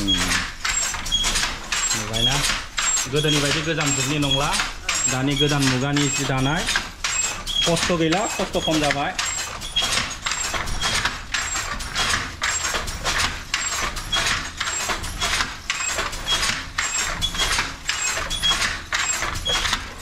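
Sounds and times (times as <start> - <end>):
wooden handloom clacking: 0.0 - 20.0.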